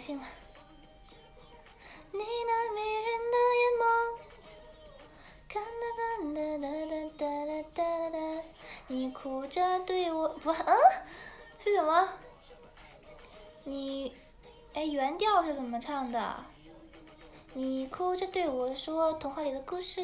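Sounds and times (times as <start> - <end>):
young woman singing: 2.1 - 4.7, 5.4 - 12.2, 13.6 - 16.5, 17.5 - 20.0.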